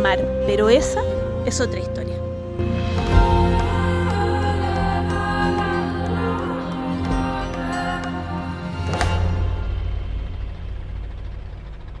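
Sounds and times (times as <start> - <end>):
boat engine rumbling: 0.0 - 12.0.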